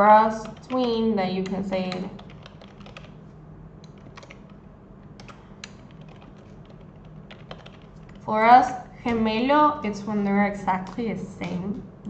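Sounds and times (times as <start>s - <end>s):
computer keyboard typing: 0.2s - 3.2s, 3.8s - 9.2s, 10.5s - 11.6s.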